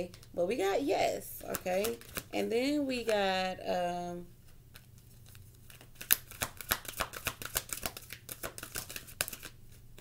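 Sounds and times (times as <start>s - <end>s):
cards being shuffled: 1.4s - 3.3s, 4.7s - 10.0s.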